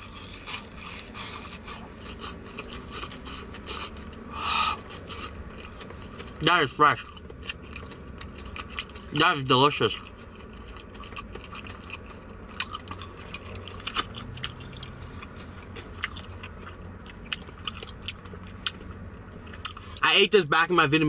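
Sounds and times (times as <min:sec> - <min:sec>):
person chewing: 0:00.0 - 0:20.0
fried chicken crunching: 0:00.0 - 0:20.1.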